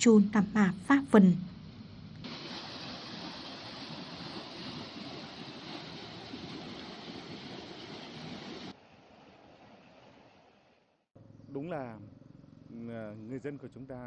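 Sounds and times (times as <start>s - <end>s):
floodwater rushing over causeway: 2.2s - 10.8s.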